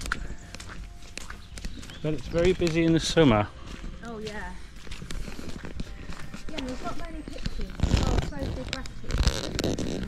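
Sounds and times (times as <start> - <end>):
footsteps on muddy track: 0.0 - 10.0.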